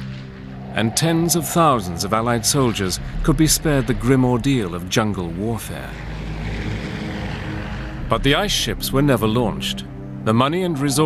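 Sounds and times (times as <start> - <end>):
low rumble: 0.0 - 11.0
propeller aircraft engine drone: 0.0 - 11.0.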